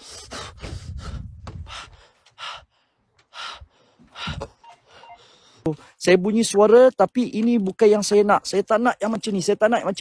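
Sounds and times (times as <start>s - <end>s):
person breathing hard: 0.0s - 5.7s.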